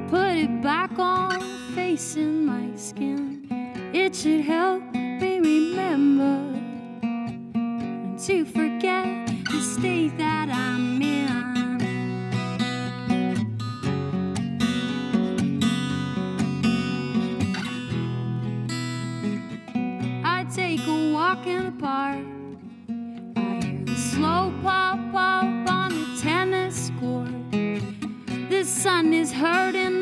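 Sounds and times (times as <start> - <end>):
woman singing: 0.0 - 7.0, 7.8 - 12.4, 20.0 - 22.7, 23.4 - 30.0
acoustic guitar strumming: 0.0 - 30.0.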